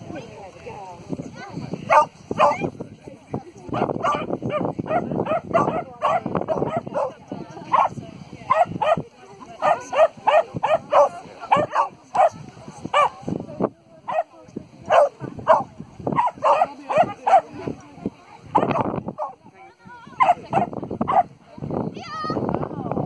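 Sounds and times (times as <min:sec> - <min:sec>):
small dog barking: 0:01.9 - 0:02.7, 0:03.8 - 0:07.9, 0:08.5 - 0:09.0, 0:09.6 - 0:13.2, 0:14.9 - 0:17.5, 0:18.6 - 0:19.4, 0:20.2 - 0:21.3.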